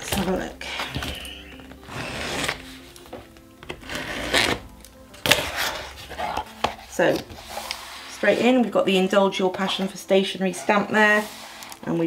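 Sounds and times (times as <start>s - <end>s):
soft background music: 0.0s - 12.0s
cardboard tearing and scraping: 1.8s - 3.0s, 3.7s - 8.5s
blade slitting packing tape: 3.6s - 5.8s.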